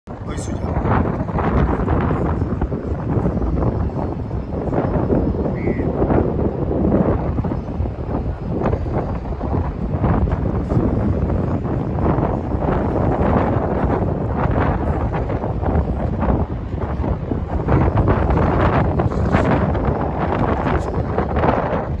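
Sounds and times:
wind buffeting microphone: 0.1 - 22.0.

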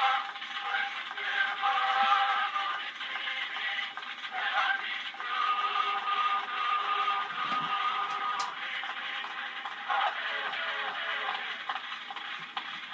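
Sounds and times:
phonograph music recording: 0.0 - 12.9.

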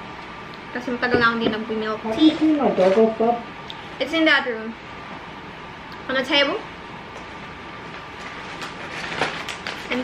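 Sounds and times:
plastic snack pouch crinkling: 8.3 - 10.0.

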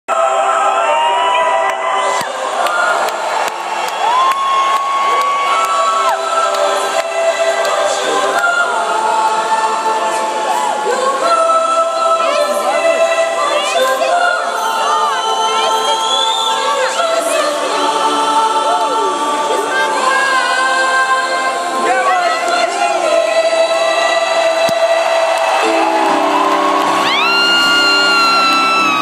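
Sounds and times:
crowd cheering: 0.1 - 11.4, 23.7 - 29.0
choir singing held notes: 0.1 - 29.0.

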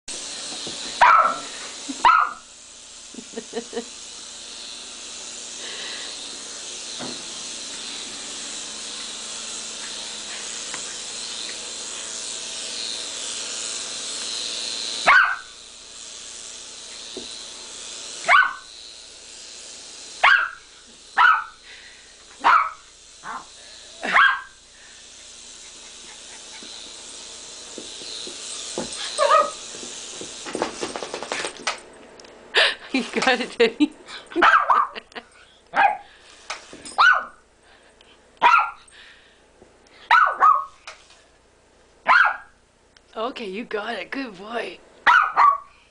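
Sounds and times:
toy helicopter rotor whirring: 0.1 - 31.9, 32.5 - 37.8
small dog barking: 1.0 - 2.4, 15.1 - 15.5, 18.3 - 18.6, 20.2 - 20.6, 21.2 - 21.6, 22.4 - 23.4, 24.1 - 24.5, 29.2 - 29.6, 34.4 - 35.0, 35.7 - 36.1, 37.0 - 37.4, 38.4 - 38.8, 40.1 - 40.8, 42.1 - 42.5, 45.0 - 45.7.

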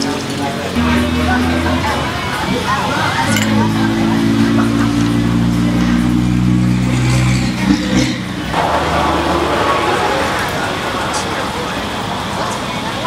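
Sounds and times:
broad noisy hiss: 0.0 - 13.0
vehicle engine running: 0.0 - 13.0.

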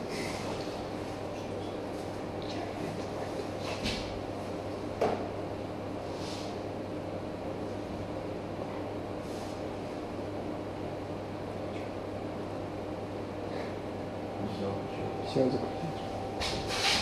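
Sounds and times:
room hum: 0.0 - 17.0.

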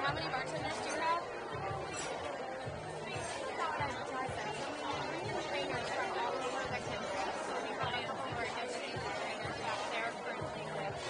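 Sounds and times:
babble of diners talking: 0.0 - 11.0.

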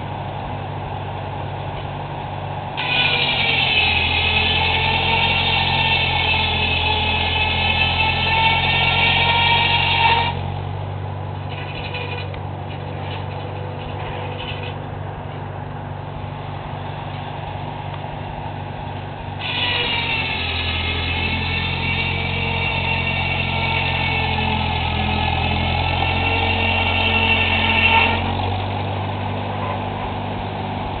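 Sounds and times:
circular saw blade whining: 0.0 - 31.0
tractor engine running: 0.0 - 31.0.

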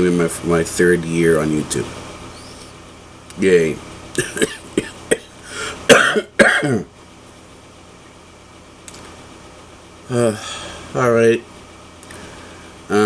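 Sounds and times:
man coughing: 4.2 - 6.9.

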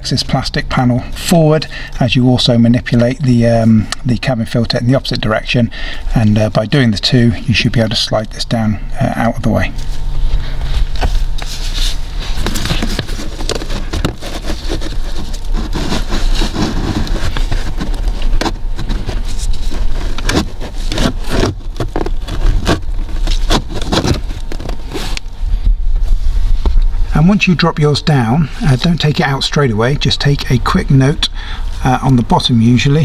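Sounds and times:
plastic and filter frame scraping: 9.7 - 25.4.

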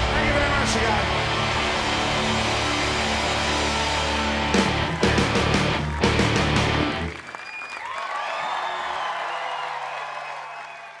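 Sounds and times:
rock band chord: 0.0 - 7.1
audience applause and cheering: 0.0 - 11.0
whistles: 7.3 - 11.0.

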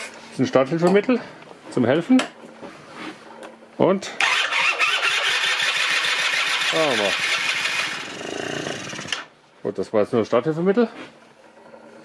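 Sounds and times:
two-stroke scooter engine running rough: 4.5 - 9.3.

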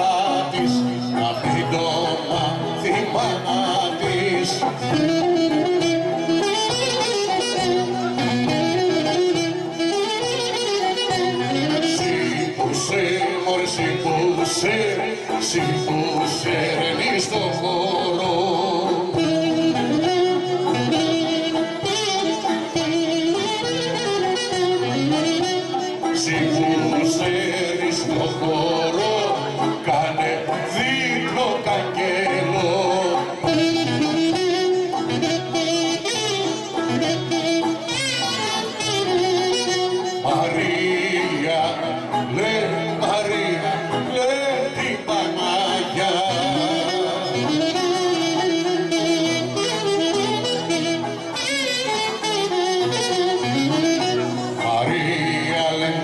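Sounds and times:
violin folk melody: 0.0 - 56.0
people singing: 26.2 - 33.3.

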